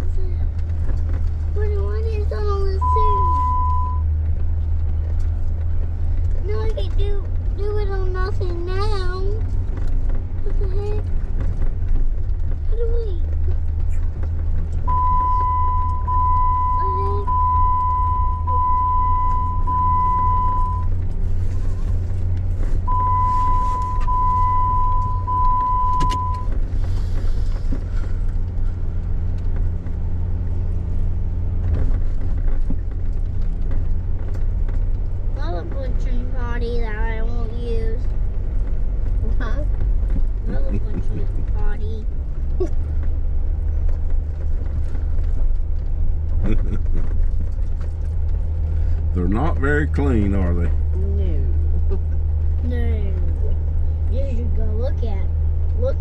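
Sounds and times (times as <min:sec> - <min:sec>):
high electronic beeps: 0:02.8 - 0:04.0, 0:22.9 - 0:26.5.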